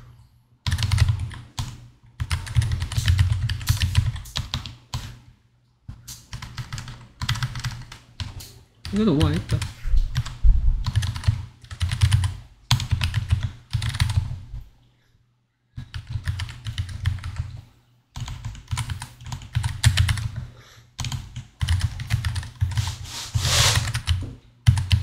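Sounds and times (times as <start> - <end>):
rapid typing on keyboard: 0.6 - 5.2, 6.2 - 14.4, 15.8 - 17.6, 18.2 - 22.9, 23.5 - 25.0.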